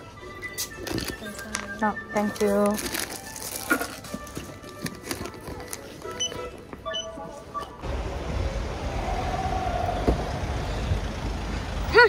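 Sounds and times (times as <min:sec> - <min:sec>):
shop background music: 0:00.0 - 0:07.9
low vehicle rumble: 0:07.8 - 0:12.0.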